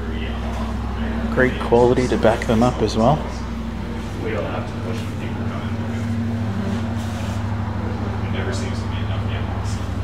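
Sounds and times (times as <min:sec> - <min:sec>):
faint voices: 0:00.0 - 0:10.0
low mechanical hum: 0:00.0 - 0:10.0.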